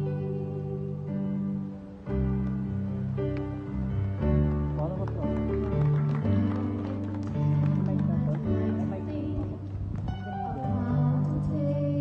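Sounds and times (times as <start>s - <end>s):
woman singing slow song: 0.0s - 1.4s, 8.6s - 9.8s, 10.4s - 12.0s.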